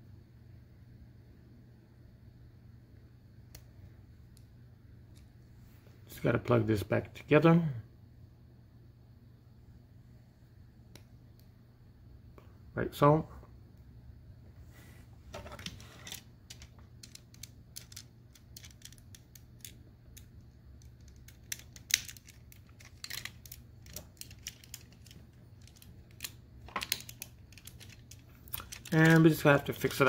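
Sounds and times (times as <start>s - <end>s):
plastic toy parts clicking: 15.6s - 30.0s.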